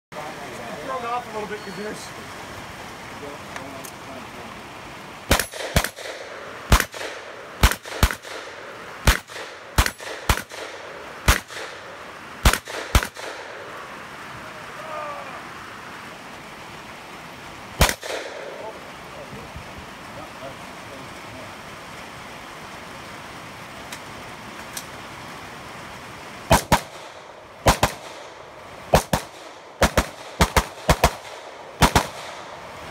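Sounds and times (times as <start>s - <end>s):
rapid gunshots: 5.3s - 11.8s, 12.4s - 13.6s, 17.8s - 18.7s, 26.5s - 32.5s.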